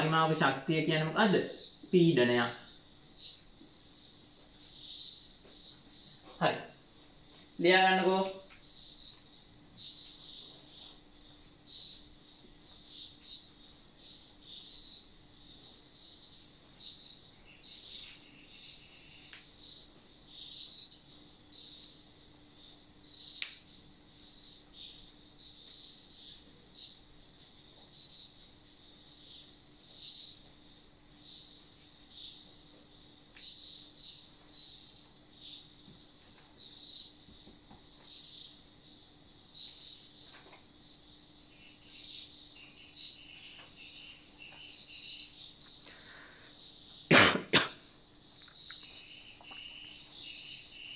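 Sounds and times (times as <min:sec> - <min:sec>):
faint steady hum: 0:00.0 - 0:50.9
insects chirping: 0:00.0 - 0:50.9.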